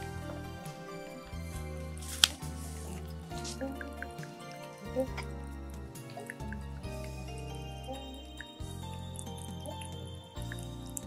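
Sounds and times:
background music with bass notes: 0.0 - 11.0.

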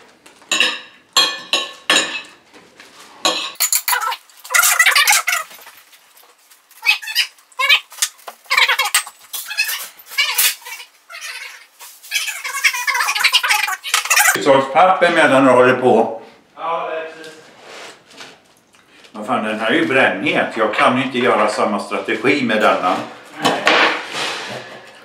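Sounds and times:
cutlery clinking on plates: 3.2 - 4.2.

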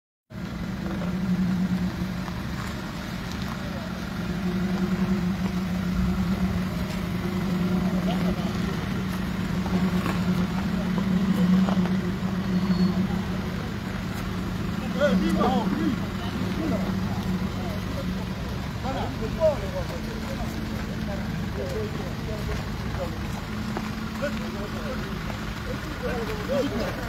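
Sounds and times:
vehicle engine idling: 0.3 - 27.0
faint voices: 0.4 - 27.0.

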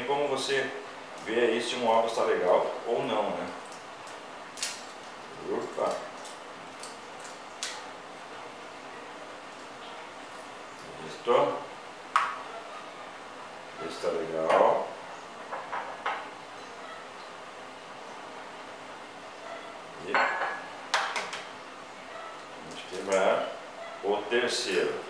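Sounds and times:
crockery clinking on a countertop: 20.1 - 21.2.

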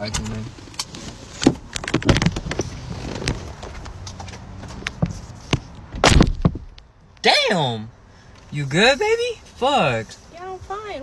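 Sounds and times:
clothing rustling: 0.9 - 5.8
car door slam: 5.9 - 6.8.

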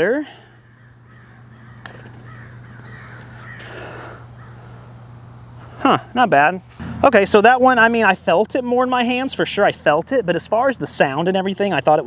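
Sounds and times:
faint rough noise: 0.0 - 12.0
putter striking golf ball: 6.7 - 7.8.

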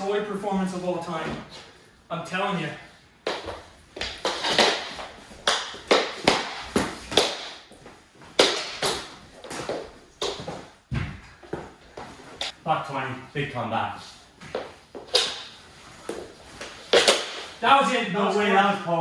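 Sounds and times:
plastic sticks and puck clacking: 8.4 - 9.1, 16.1 - 17.5.

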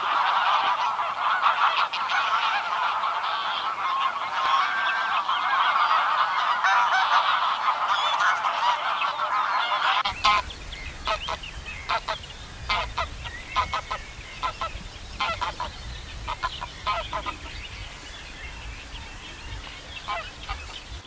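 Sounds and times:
geese honking: 0.0 - 17.8, 18.5 - 20.9.

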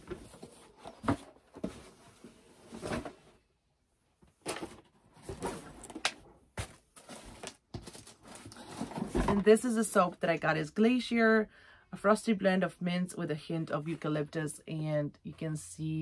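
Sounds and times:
items knocking and bumping: 0.0 - 3.2, 4.4 - 9.5.

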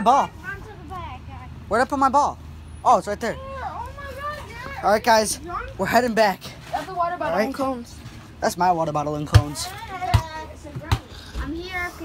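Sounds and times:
boy talking: 0.0 - 1.5, 3.2 - 12.0.

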